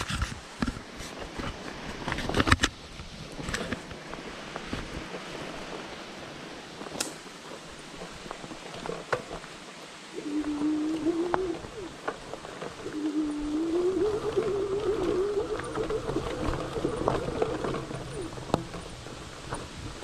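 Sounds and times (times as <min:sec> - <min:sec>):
bike tyres on dirt trail: 0:00.0 - 0:20.0.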